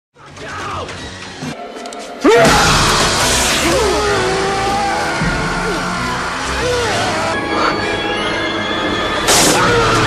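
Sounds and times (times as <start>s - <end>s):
loud horror film music: 0.2s - 10.0s
voices crying out: 3.6s - 8.4s.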